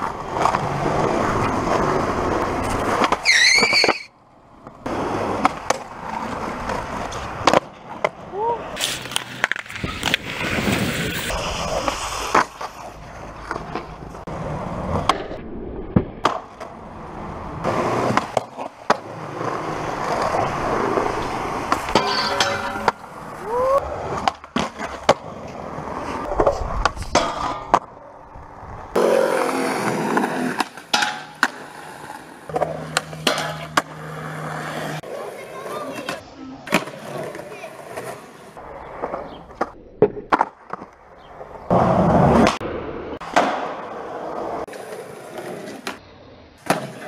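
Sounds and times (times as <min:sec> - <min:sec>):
skateboard wheels rolling on concrete: 0:00.0 - 0:47.0
skateboard clacks: 0:04.6 - 0:08.3, 0:17.6 - 0:23.4, 0:28.9 - 0:34.1, 0:38.9 - 0:41.1, 0:43.2 - 0:44.0, 0:46.6 - 0:47.0.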